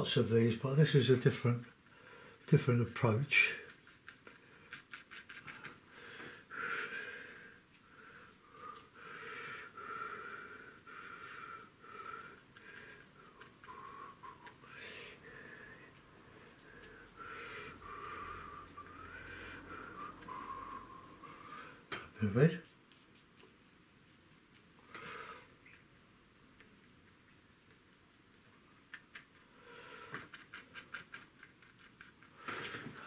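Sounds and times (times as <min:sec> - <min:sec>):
brush squeaking: 0:02.5 - 0:05.9, 0:12.2 - 0:21.6, 0:22.2 - 0:24.9, 0:26.6 - 0:32.7
bristle brush scrubbing paper: 0:02.6 - 0:05.9, 0:12.3 - 0:24.9, 0:26.6 - 0:33.0.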